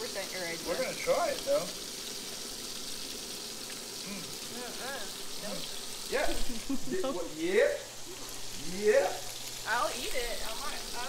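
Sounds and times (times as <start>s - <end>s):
food sizzling in a frying pan: 0.0s - 11.0s.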